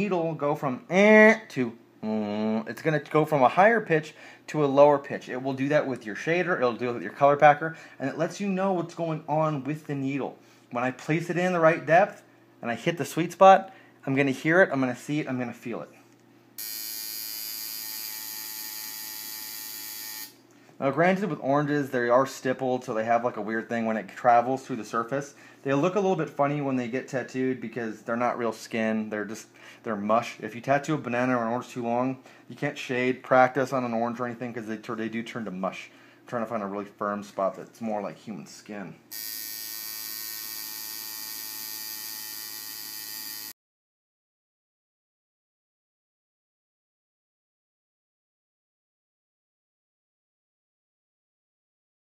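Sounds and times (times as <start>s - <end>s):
tattoo machine buzzing: 16.6s - 20.4s, 39.1s - 43.6s.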